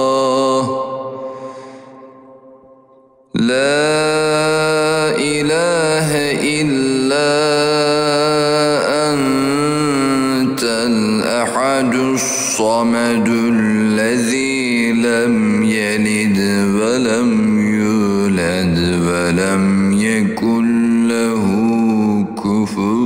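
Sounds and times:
person chanting melodic recitation: 0:00.0 - 0:02.7, 0:03.3 - 0:23.0.

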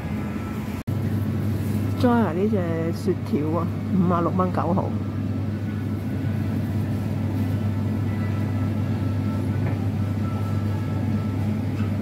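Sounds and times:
refrigeration hum: 0:00.0 - 0:12.0.

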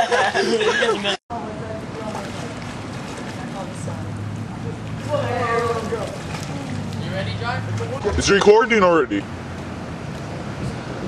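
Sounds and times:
faint indistinct voices: 0:01.3 - 0:08.3.

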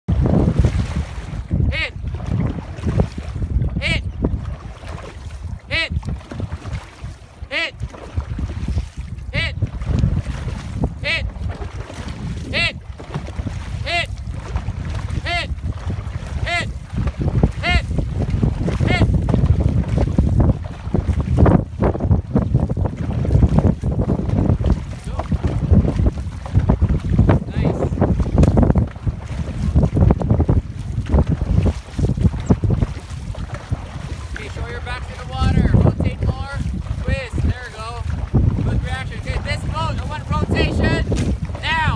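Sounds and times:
paddles stroking through water: 0:00.1 - 0:41.9
wind buffeting microphone: 0:00.1 - 0:41.9
person shouting calls: 0:01.7 - 0:02.0, 0:03.8 - 0:04.1, 0:05.7 - 0:06.0, 0:07.5 - 0:07.8, 0:09.3 - 0:09.6, 0:11.0 - 0:11.3, 0:12.5 - 0:12.8, 0:13.8 - 0:14.2, 0:15.2 - 0:15.6, 0:16.4 - 0:16.8, 0:17.6 - 0:17.9, 0:18.8 - 0:19.1.

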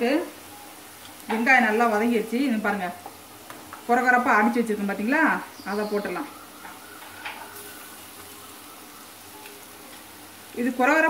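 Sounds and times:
onions sizzling in oil: 0:00.0 - 0:11.0.

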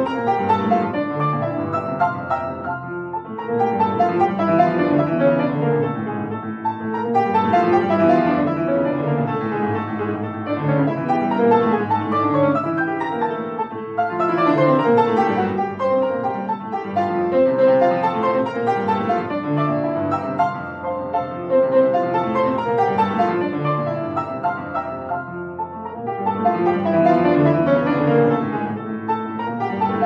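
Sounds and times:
fast solo piano octaves: 0:00.0 - 0:30.0.

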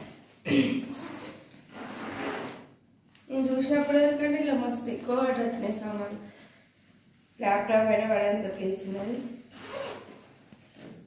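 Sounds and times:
zipper on nylon backpack: 0:00.8 - 0:02.7, 0:09.3 - 0:11.0.

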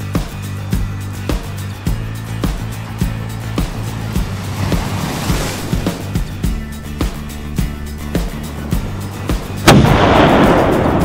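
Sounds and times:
background music: 0:00.0 - 0:11.0
cannon boom: 0:09.7 - 0:11.0.

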